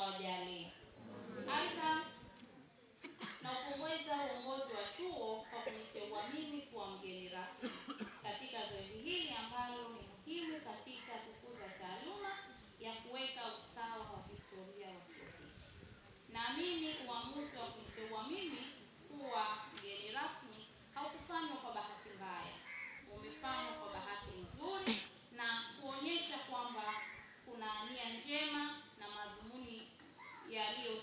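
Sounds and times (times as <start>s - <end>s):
woman speaking over pa: 0.0s - 2.2s, 21.0s - 25.0s.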